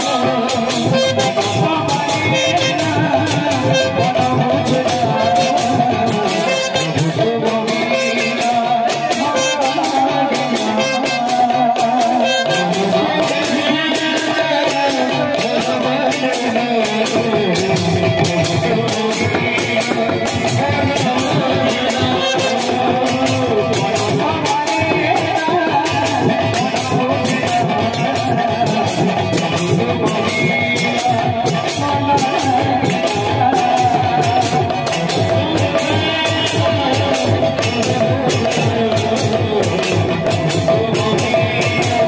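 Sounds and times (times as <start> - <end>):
barrel drum: 0.0 - 42.0
held melody line: 0.0 - 42.0.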